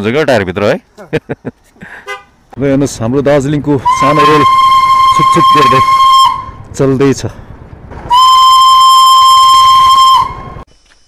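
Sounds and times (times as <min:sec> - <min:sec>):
vehicle horn toot: 0:02.0 - 0:02.3, 0:03.8 - 0:06.6, 0:08.1 - 0:10.6.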